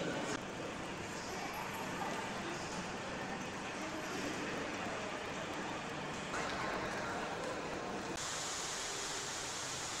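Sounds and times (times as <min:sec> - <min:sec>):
steady background hiss: 0:07.3 - 0:10.0.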